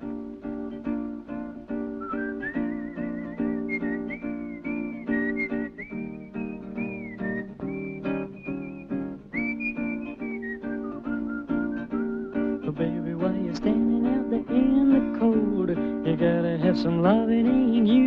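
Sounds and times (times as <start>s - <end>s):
strummed acoustic guitar: 0.0s - 18.0s
whistled melody: 1.8s - 12.7s.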